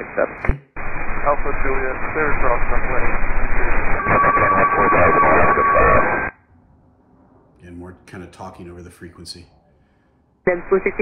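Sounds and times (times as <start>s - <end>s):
garbled overlapping radio voices: 0.0s - 0.6s, 1.3s - 6.3s
high-pitched radio whine: 0.0s - 6.4s, 10.5s - 11.0s.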